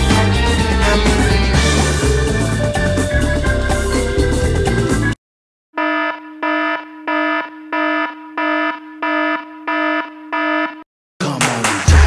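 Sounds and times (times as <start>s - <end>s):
electronic alarm beeping: 5.8s - 10.8s.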